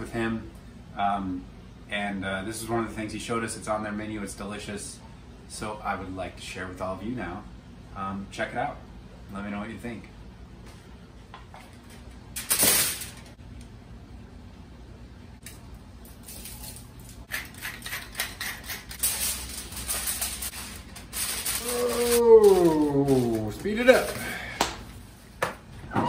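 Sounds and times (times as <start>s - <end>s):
aluminium foil crinkling: 16.0s - 24.2s.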